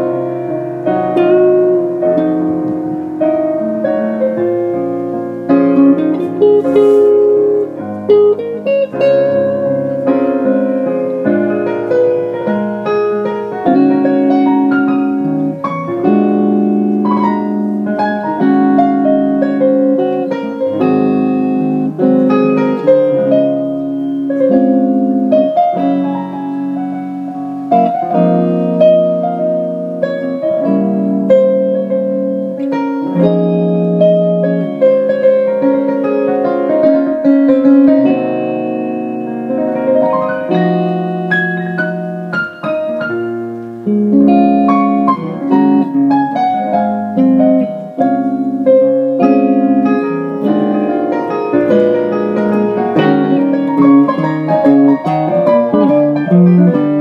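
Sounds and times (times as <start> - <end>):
electric guitar notes ringing: 0.0 - 57.0
electronic keyboard piano chords: 0.0 - 57.0.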